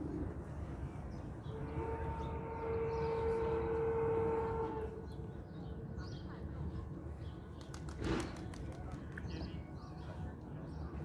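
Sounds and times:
distant horn long note: 0:01.4 - 0:05.2.

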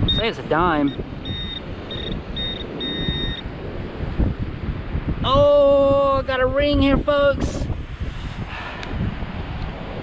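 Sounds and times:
pinpointer beeping: 0:00.0 - 0:03.5
wind rumbling on microphone: 0:00.0 - 0:10.0.

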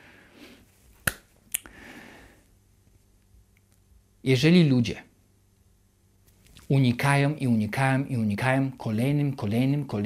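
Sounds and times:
faint low-level noise: 0:00.0 - 0:10.0.

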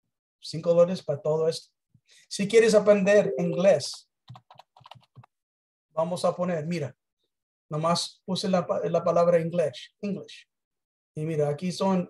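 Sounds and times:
computer keyboard typing: 0:03.4 - 0:05.3.

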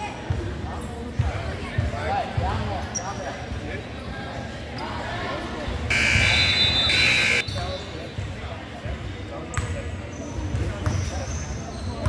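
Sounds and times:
voices in large room: 0:00.0 - 0:12.0.

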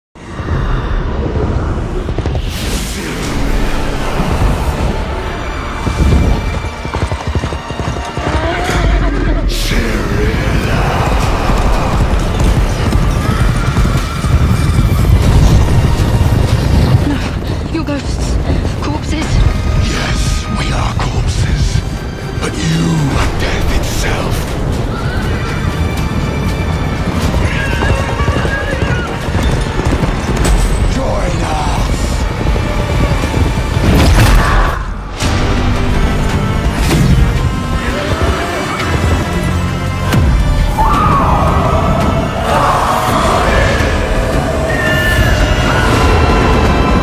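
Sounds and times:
background music: 0:00.2 - 0:47.0
horses galloping: 0:04.4 - 0:09.4, 0:10.1 - 0:20.5, 0:21.7 - 0:34.0, 0:36.0 - 0:47.0.

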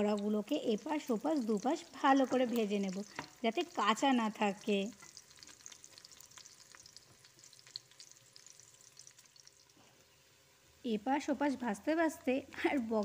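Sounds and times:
fritters sizzling in oil: 0:00.0 - 0:13.0.

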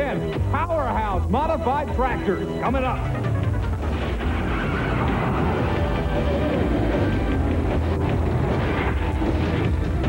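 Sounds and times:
theme music: 0:00.0 - 0:10.0
truck engine noise: 0:03.4 - 0:10.0.

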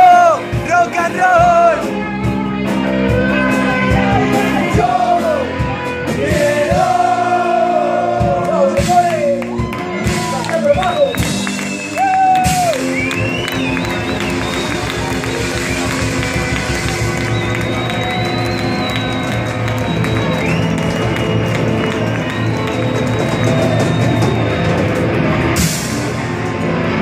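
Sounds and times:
crowd cheering: 0:00.0 - 0:27.0
rock band playing loud: 0:00.0 - 0:27.0.

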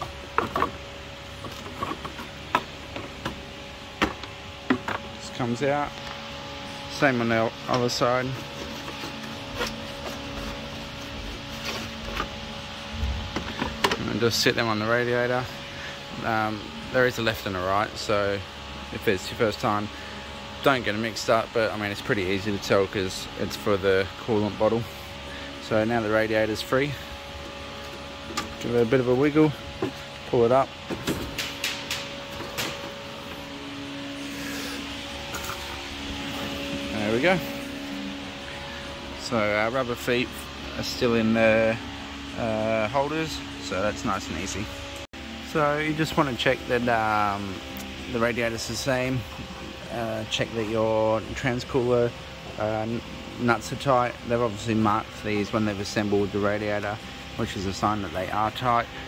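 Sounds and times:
steady low machine hum: 0:00.0 - 0:59.0.

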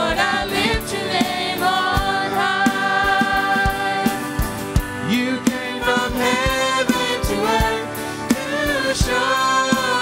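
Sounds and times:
women singing together: 0:00.0 - 0:04.5, 0:05.4 - 0:10.0
acoustic guitar: 0:00.0 - 0:10.0
electric guitar: 0:00.0 - 0:10.0
electronic drum kit beat: 0:00.1 - 0:10.0.

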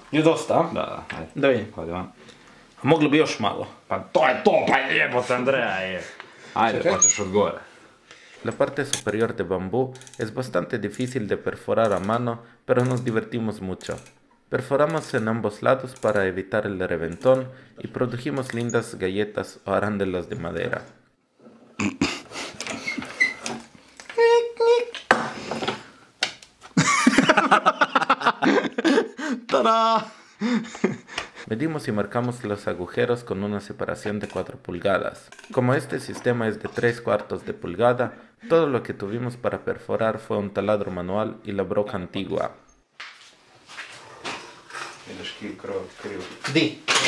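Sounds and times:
person speaking: 0:02.8 - 0:07.7, 0:24.0 - 0:25.5, 0:27.2 - 0:42.6.

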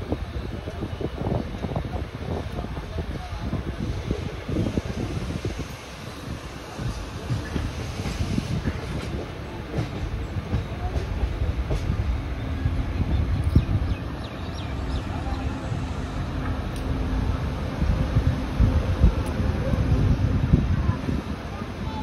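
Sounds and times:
train wheels rumbling on rails: 0:00.0 - 0:22.0.

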